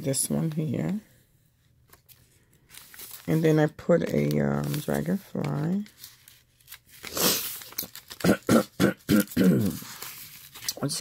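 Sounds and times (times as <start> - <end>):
woman clearing her throat: 8.2 - 9.8.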